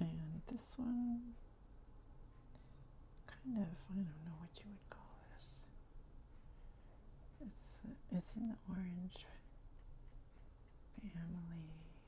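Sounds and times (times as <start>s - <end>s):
woman whispering: 3.3s - 5.8s, 7.4s - 9.5s, 11.0s - 12.0s.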